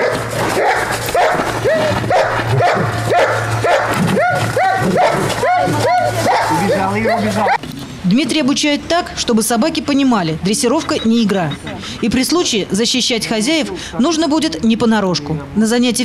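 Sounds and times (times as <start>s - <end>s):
dog barking: 0.0s - 7.6s.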